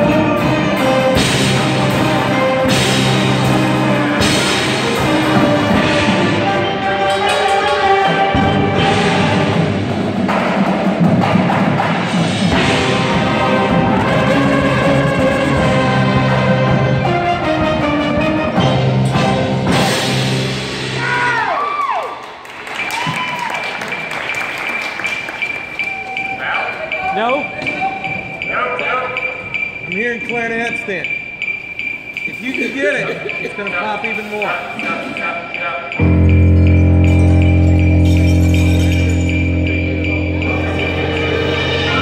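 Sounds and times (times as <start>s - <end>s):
marching band playing: 0.0s - 21.1s, 36.0s - 42.0s.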